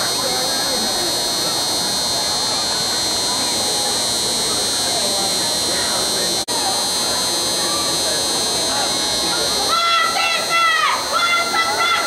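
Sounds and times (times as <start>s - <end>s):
high-pitched buzz: 0.0s - 12.0s.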